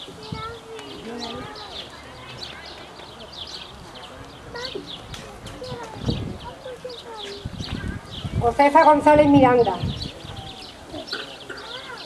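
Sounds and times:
birds chirping: 0:00.0 - 0:12.0
faint murmured voices: 0:00.0 - 0:12.0.

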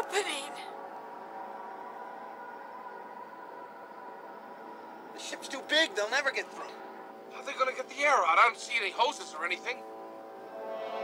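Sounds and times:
spaceship droning hum: 0:00.0 - 0:11.0.

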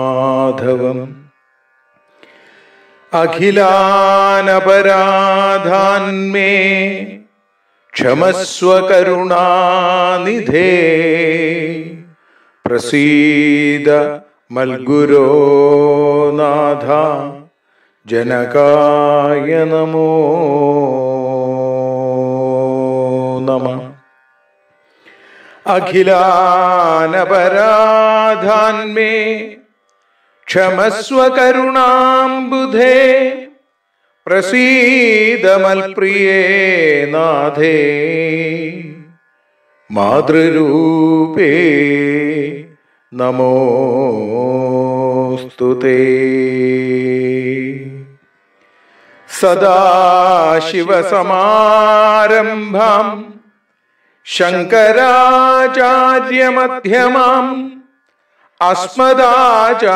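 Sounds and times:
man chanting a prayer: 0:00.0 - 0:01.4, 0:03.1 - 0:07.3, 0:08.0 - 0:24.1, 0:25.6 - 0:29.7, 0:30.5 - 0:33.6, 0:34.3 - 0:48.3, 0:49.2 - 0:53.5, 0:54.2 - 0:57.9, 0:58.6 - 0:59.9.

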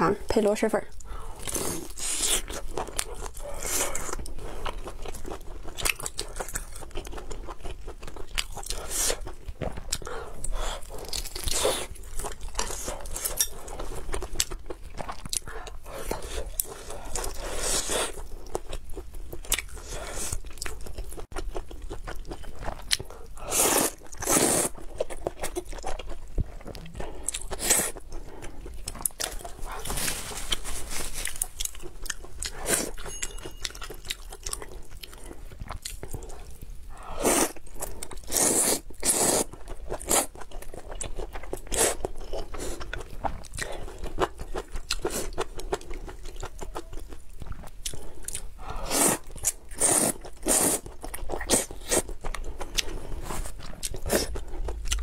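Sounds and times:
chewing with crunches: 0:00.9 - 0:55.0
person slurping noodles: 0:23.4 - 0:24.7, 0:37.0 - 0:37.6, 0:38.2 - 0:40.3, 0:48.6 - 0:50.8.

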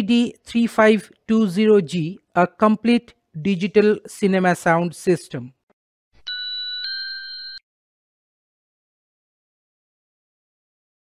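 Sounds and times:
electronic chime ding: 0:06.2 - 0:07.6.

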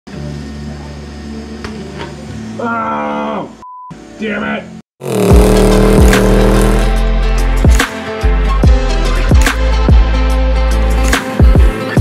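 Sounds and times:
metalworking tool humming on steel: 0:05.0 - 0:07.0.

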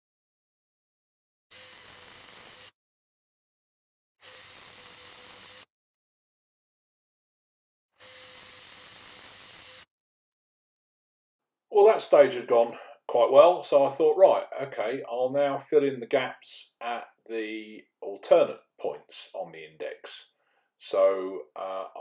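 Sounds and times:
cordless drill whining: 0:01.5 - 0:02.8, 0:04.2 - 0:05.7, 0:08.0 - 0:09.9.

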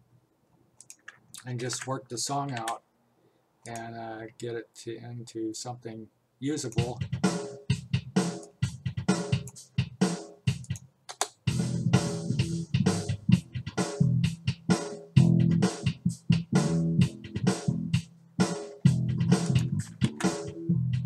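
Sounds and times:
drum beat: 0:06.8 - 0:10.8, 0:11.4 - 0:21.0
bass riff: 0:11.5 - 0:18.1, 0:18.8 - 0:21.0.

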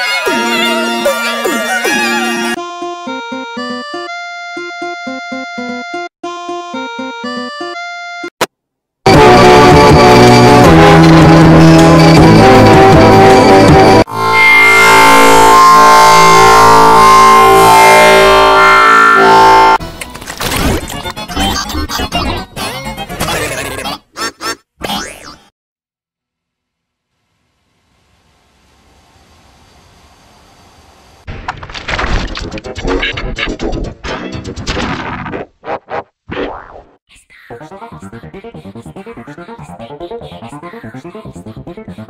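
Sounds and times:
loud distorted electronic chord: 0:09.1 - 0:19.8
distorted cartoon sound effect: 0:20.8 - 0:25.5, 0:32.4 - 0:42.0
choppy electronic warbling: 0:36.3 - 0:42.0.

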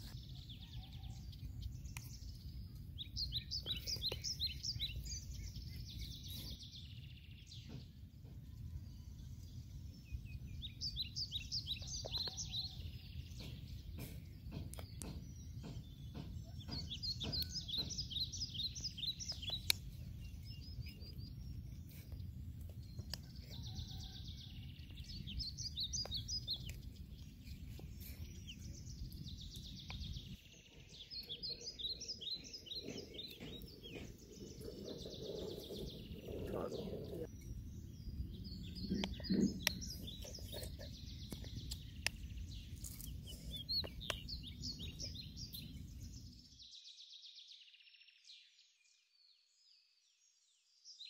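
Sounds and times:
birds chirping: 0:00.0 - 0:46.7
low outdoor rumble: 0:31.0 - 0:46.3.

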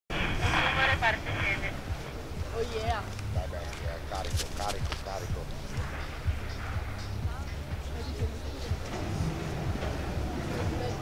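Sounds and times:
wind buffeting microphone: 0:00.1 - 0:11.0.

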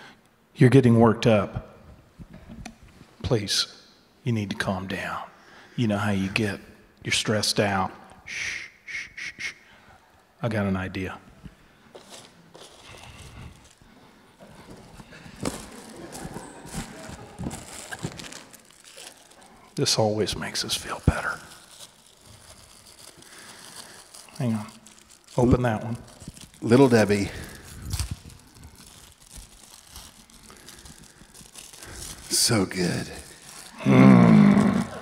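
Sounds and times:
plastic wrappers crinkling: 0:11.8 - 0:35.0
cardboard box being handled: 0:14.4 - 0:19.3.

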